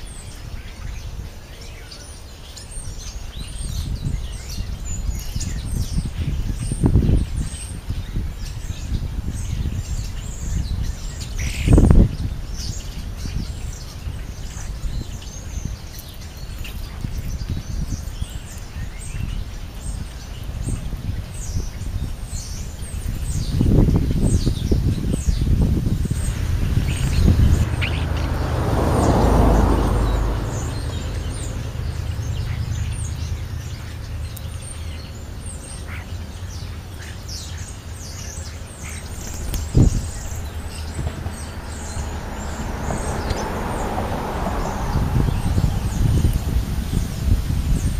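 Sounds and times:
birds chirping: 0.0 - 47.9.

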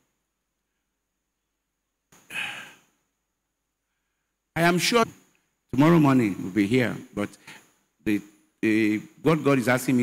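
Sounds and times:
man sighing: 2.2 - 3.0.

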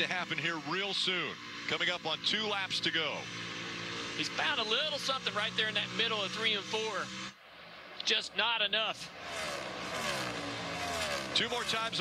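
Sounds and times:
race cars passing at full speed: 0.0 - 8.1, 8.9 - 12.0.

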